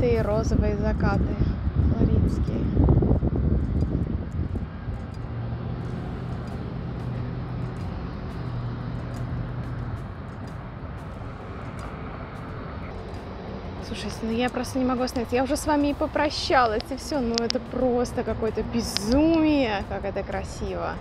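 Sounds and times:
distant engine humming: 0.0 - 21.0
low drone: 0.0 - 21.0
low rumble: 0.0 - 21.0.

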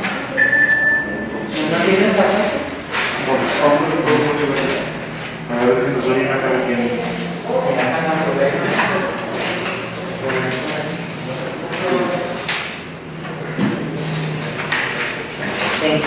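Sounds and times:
papers rustling: 1.4 - 5.9, 9.0 - 16.0.

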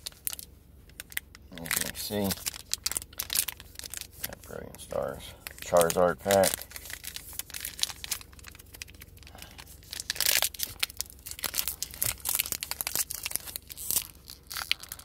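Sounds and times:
foil wrapper crinkling: 0.0 - 15.0.

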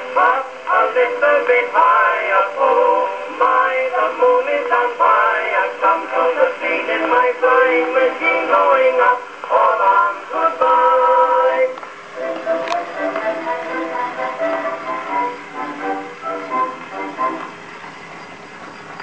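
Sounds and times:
old phonograph record music: 0.0 - 19.0.

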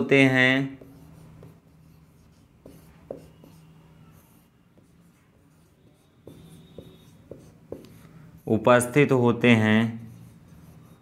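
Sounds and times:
marker writing on whiteboard: 0.2 - 9.0, 9.8 - 11.0.

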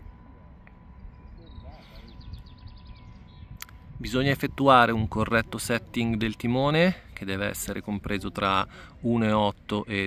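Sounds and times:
low rumble: 0.0 - 8.8
distant voices: 0.0 - 10.0
thin steady high tone: 0.0 - 10.0.

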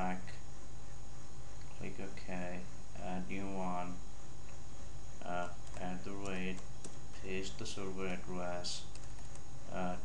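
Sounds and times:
low electrical hum: 0.0 - 10.0
keyboard typing: 5.3 - 7.0, 8.8 - 9.4.

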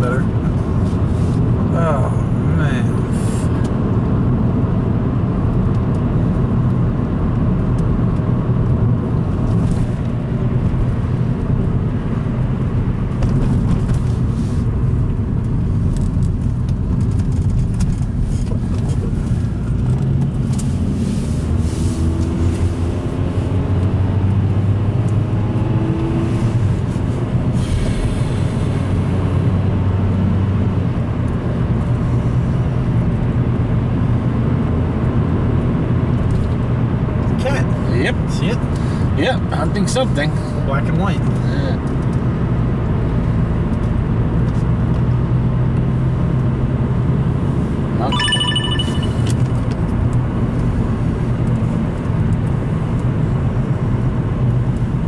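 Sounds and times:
car engine and tyre drone: 0.0 - 39.2.

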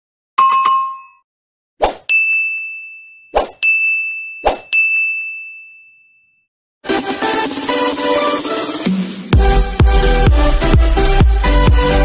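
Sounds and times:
bright bell ding: 0.4 - 1.2, 2.1 - 6.4
electronic dance music: 6.8 - 12.0.

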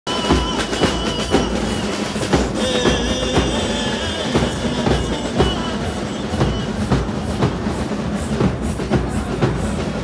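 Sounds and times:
drums beating: 0.1 - 10.0.

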